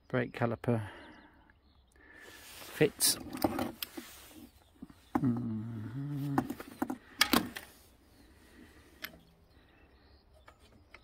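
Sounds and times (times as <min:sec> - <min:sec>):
person humming: 0:05.2 - 0:06.6.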